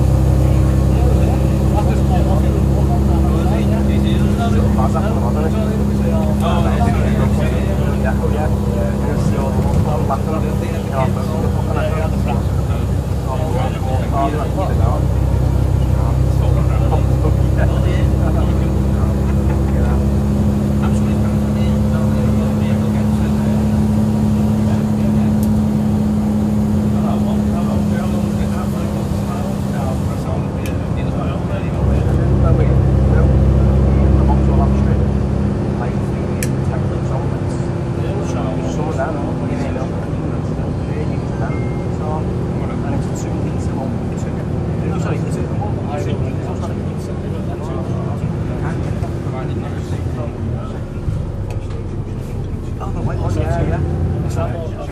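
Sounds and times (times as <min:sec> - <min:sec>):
bus diesel engine drone: 0:00.0 - 0:54.9.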